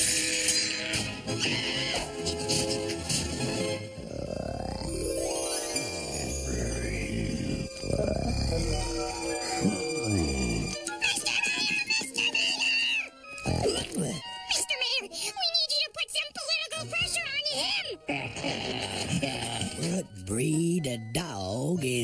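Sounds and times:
cartoon background music: 0.0 - 22.0
character vocal noises: 4.0 - 14.3.

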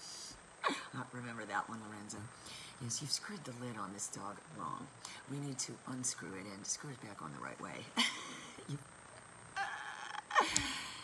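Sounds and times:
woman laughing: 8.0 - 8.9, 9.6 - 11.0.

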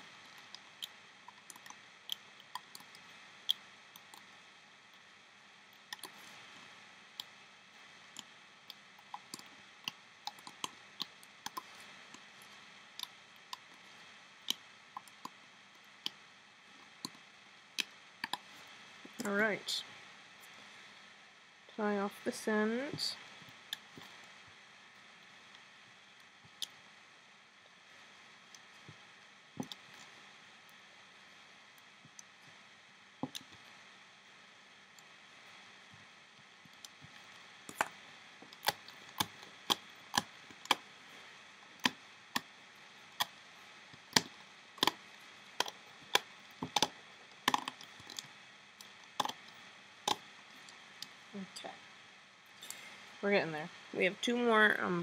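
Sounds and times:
loom bands clicking and snapping: 0.0 - 4.4, 8.1 - 16.2, 43.1 - 49.5.

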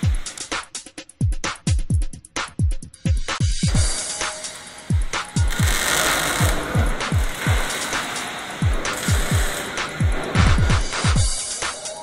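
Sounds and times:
electronic music with kick drum: 0.0 - 12.0
hissing noise: 3.8 - 11.2.

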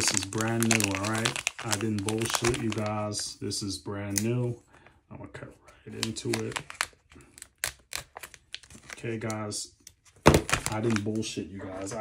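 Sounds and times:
plastic pouch tearing and crinkling: 0.0 - 3.2, 5.9 - 9.5, 10.2 - 11.2.

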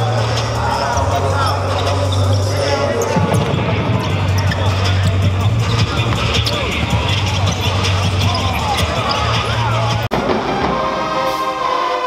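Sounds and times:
voices: 0.0 - 10.2
music: 0.0 - 12.0.

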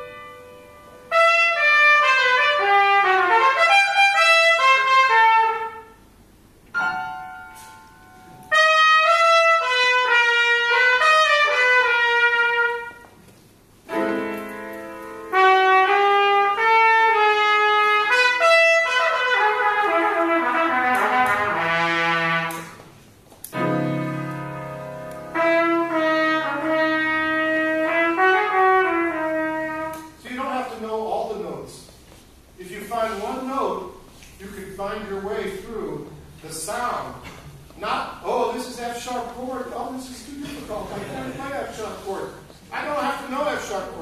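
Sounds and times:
trumpet improvising melody: 0.0 - 31.0
sustained piano chords: 6.0 - 13.0, 13.8 - 17.2, 23.5 - 30.0.

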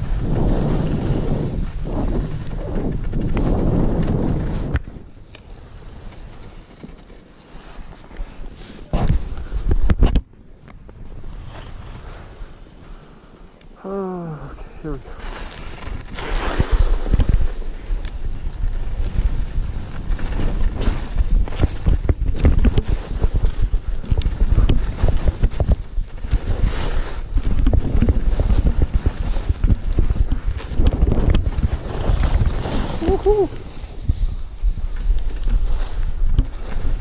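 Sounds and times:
wind buffeting microphone: 0.0 - 6.6, 15.6 - 37.0
skis scraping over snow: 0.0 - 9.9, 10.7 - 13.5, 14.6 - 37.0
short falling vocal sound: 33.0 - 33.6.

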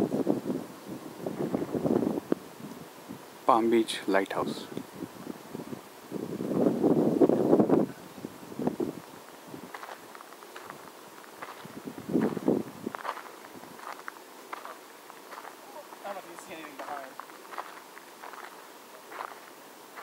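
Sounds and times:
footsteps on gravel: 9.6 - 20.0.

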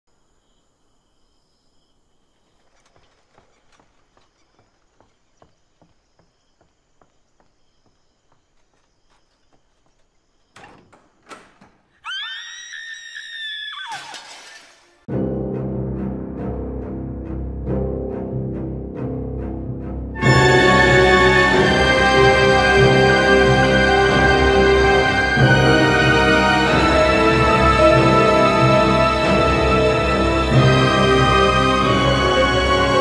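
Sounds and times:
faint footsteps: 2.4 - 11.2
woman screaming: 12.0 - 14.2
dramatic orchestral music with timpani: 15.1 - 33.0.

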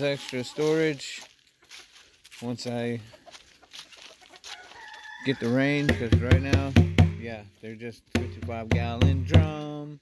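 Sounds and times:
chickens clucking: 0.0 - 7.2.

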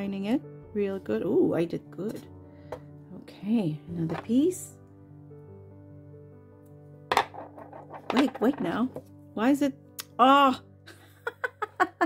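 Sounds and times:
soft background music: 0.0 - 12.0
plastic ring clattering on wood: 7.1 - 9.1.

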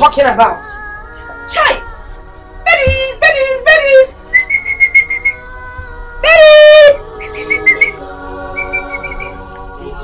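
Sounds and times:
soft background music: 0.0 - 10.0
woman whistling high note: 4.3 - 5.4, 7.2 - 8.0.

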